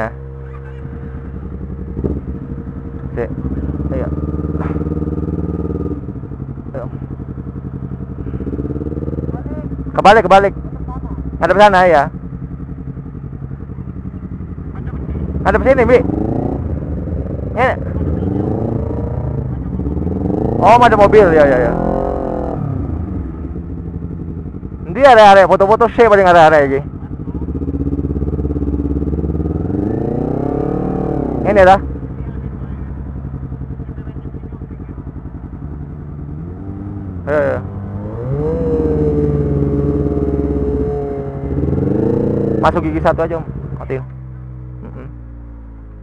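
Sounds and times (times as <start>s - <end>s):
motorcycle engine idling: 0.0s - 46.0s
person calling out: 44.8s - 45.2s.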